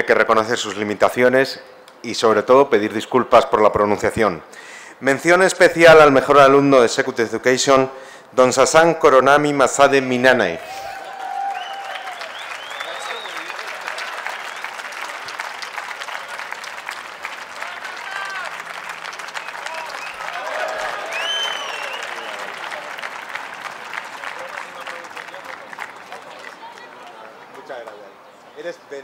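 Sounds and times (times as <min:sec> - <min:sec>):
audience applauding: 0:10.7 - 0:28.0.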